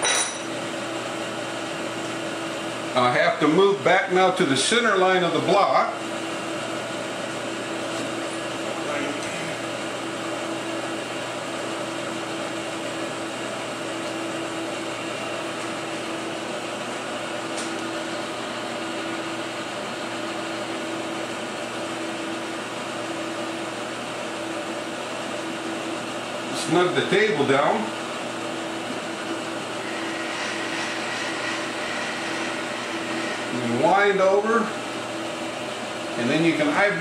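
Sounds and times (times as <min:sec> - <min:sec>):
motor hum: 0:05.3 - 0:37.0.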